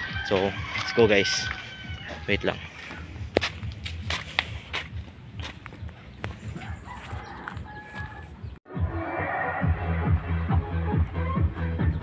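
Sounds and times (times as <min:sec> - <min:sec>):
footsteps: 0:00.2 - 0:08.4
electronic music with bass beat: 0:08.7 - 0:12.0.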